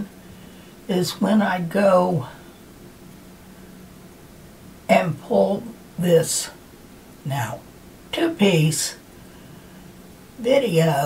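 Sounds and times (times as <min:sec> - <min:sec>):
faint low hum: 0:00.0 - 0:11.0
woman speaking: 0:00.9 - 0:02.4, 0:04.9 - 0:06.6, 0:07.2 - 0:09.0, 0:10.4 - 0:11.0.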